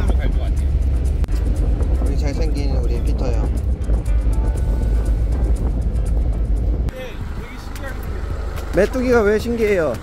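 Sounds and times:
truck rumbling on dirt road: 0.0s - 10.0s
truck engine idling: 3.6s - 10.0s.

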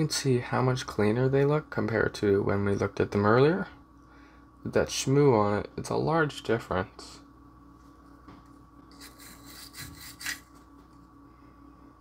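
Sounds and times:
faint electrical hum: 0.0s - 12.0s
scratchy rubbing: 8.9s - 10.5s.

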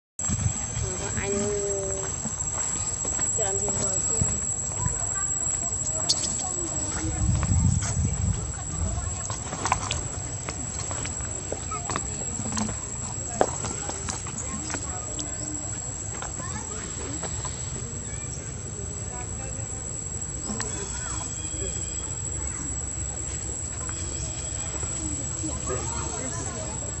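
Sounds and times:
indistinct voices: 0.3s - 27.0s.

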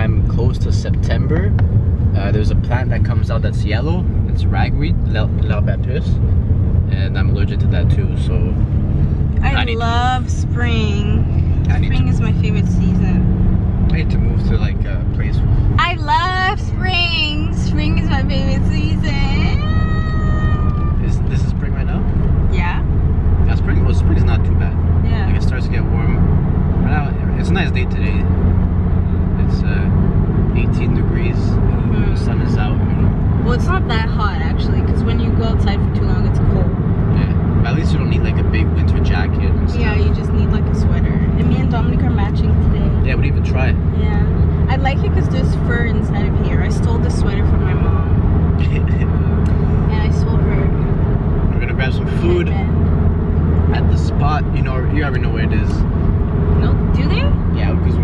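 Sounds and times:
car driving rumble inside cabin: 0.0s - 58.0s.

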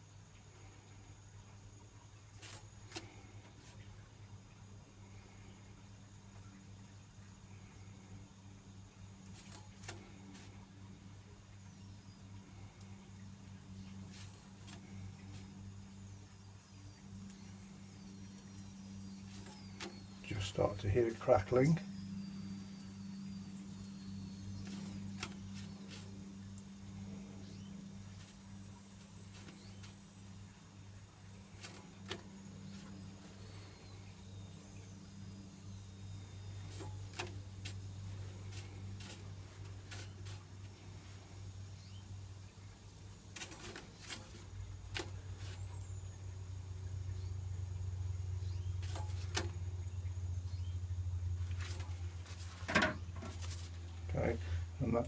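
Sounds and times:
gas burner hum: 2.3s - 55.0s
poppadom crackling over flames: 8.4s - 54.2s.

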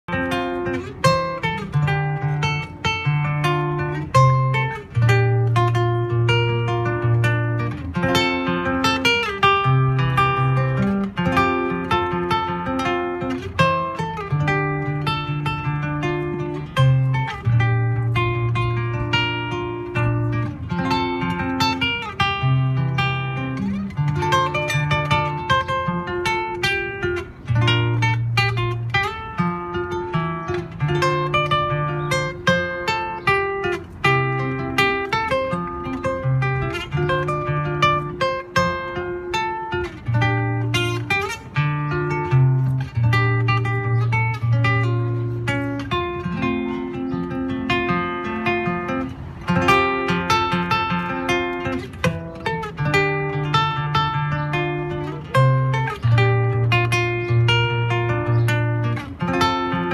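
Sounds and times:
acoustic guitar playing: 0.0s - 59.9s.

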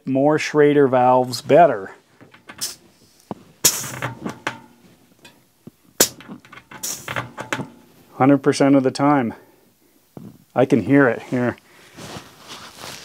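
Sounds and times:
air hissing from tyre valve: 2.4s - 4.6s, 6.0s - 7.7s
sharp click: 6.0s - 7.9s.

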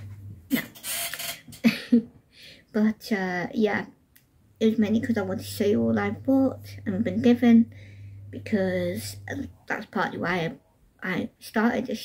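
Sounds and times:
woman laughing: 0.5s - 0.8s, 1.5s - 2.2s
woman speaking: 2.7s - 3.9s, 4.6s - 12.0s.

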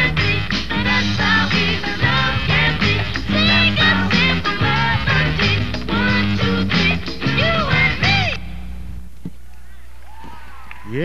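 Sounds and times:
performance music: 0.0s - 8.4s
steady low hum: 2.2s - 10.0s.

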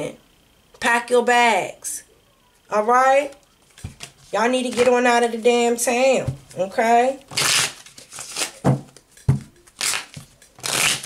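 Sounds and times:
cards being shuffled: 3.6s - 5.0s, 7.3s - 11.0s.

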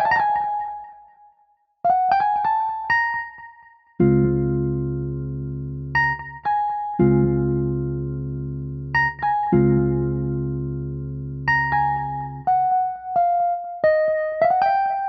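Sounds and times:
sustained keyboard chords: 1.9s - 15.0s.

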